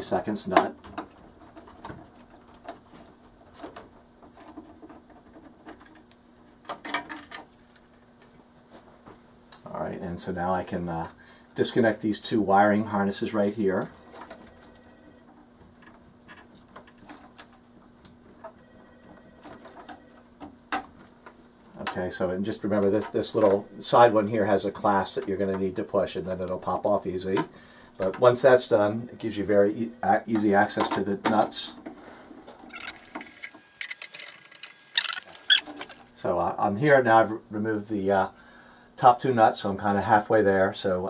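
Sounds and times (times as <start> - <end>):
faint steady hum: 0.0 - 41.0.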